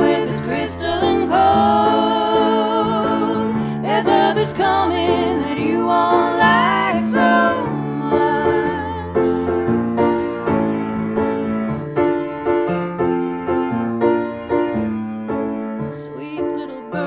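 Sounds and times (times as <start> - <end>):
upright piano chords: 0.0 - 17.0.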